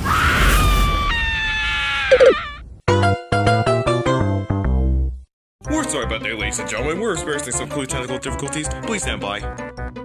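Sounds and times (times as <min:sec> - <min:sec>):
long high-pitched scream: 0:00.0 - 0:02.6.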